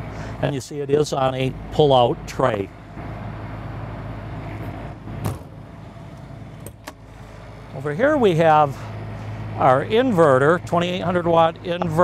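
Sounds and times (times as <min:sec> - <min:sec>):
generator humming: 0:00.0 - 0:12.0.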